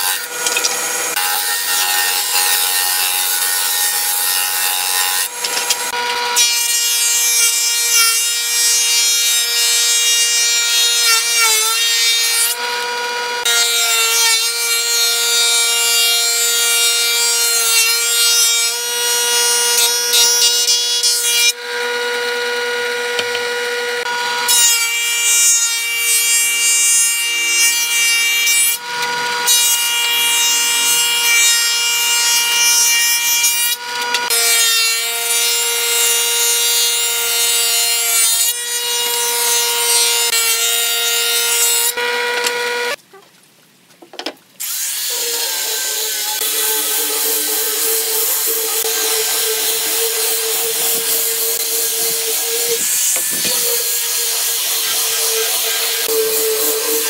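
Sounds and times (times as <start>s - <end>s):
boards being planed: 0.0s - 43.0s, 44.1s - 57.0s
planer cutterhead whining: 19.4s - 26.0s.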